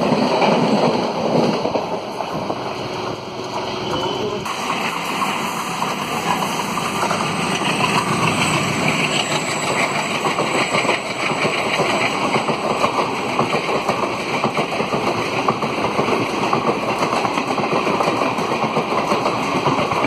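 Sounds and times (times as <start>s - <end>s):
train wheels rushing on rails: 0.0s - 20.0s.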